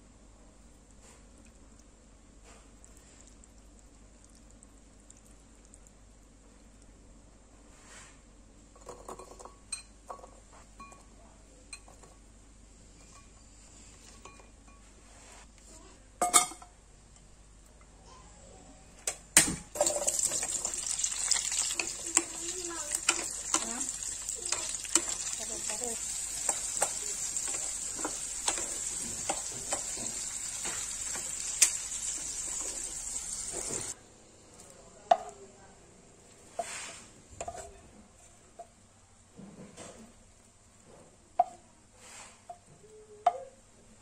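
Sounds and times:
loud sizzling in a wok: 0:19.8 - 0:34.0.

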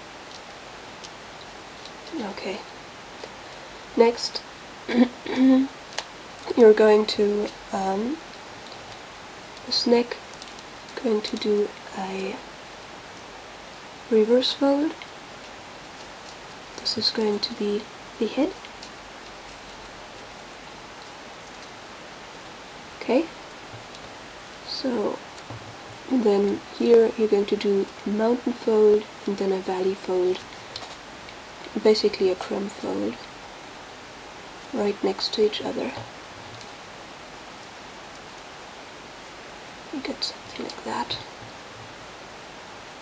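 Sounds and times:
steady background hiss: 0:00.0 - 0:43.0.

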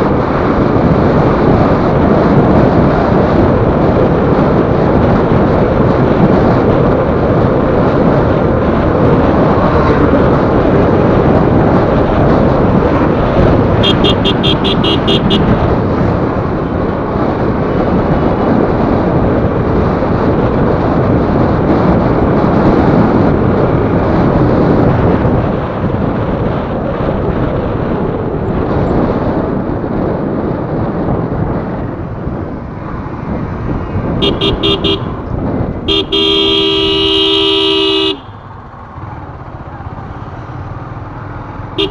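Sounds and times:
motorcycle engine: 0:00.0 - 0:41.9
wind buffeting microphone: 0:00.0 - 0:41.9.

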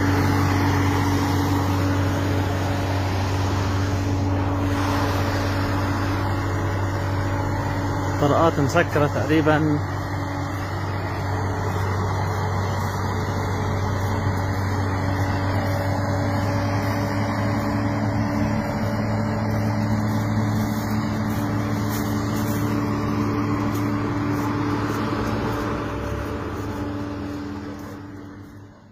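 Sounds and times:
vehicle engine droning: 0:00.0 - 0:28.9.

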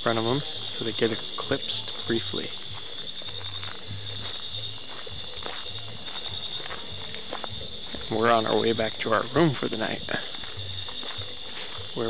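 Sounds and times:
night insects trilling: 0:00.0 - 0:12.0.

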